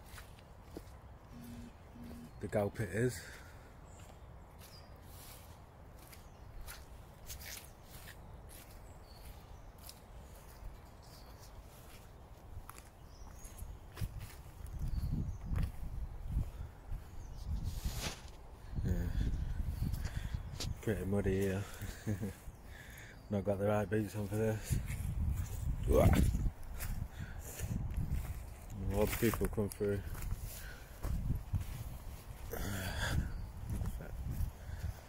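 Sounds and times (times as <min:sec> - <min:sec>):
footsteps on leaves and twigs: 0:00.0 - 0:02.3, 0:03.2 - 0:18.5, 0:24.1 - 0:35.0.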